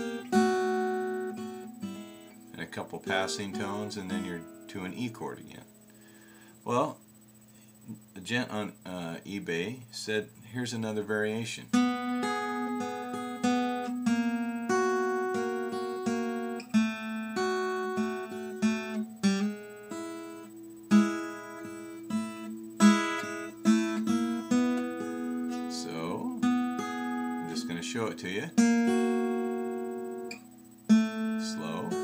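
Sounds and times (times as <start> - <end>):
acoustic guitar blues playing: 0.0 - 6.0, 11.7 - 32.0.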